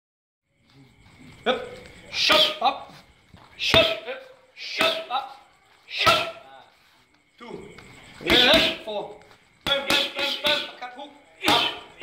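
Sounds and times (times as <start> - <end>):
punch smacking a pad: 11.5 - 11.8.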